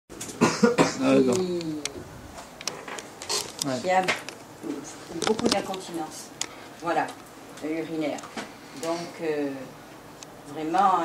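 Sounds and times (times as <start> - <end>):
person coughing: 0.3 - 1.4.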